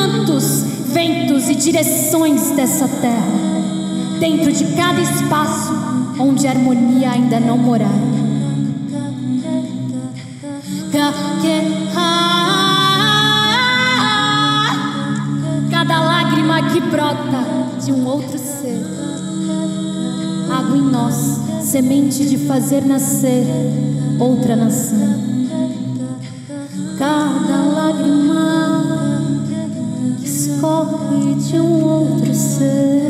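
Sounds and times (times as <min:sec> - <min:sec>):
woman singing a cappella: 0:00.0 - 0:33.0.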